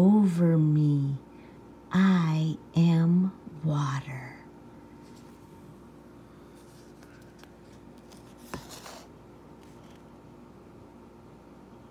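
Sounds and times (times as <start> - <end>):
low steady hum: 0.0 - 11.9
paper book rustling: 5.0 - 5.5, 6.5 - 10.1.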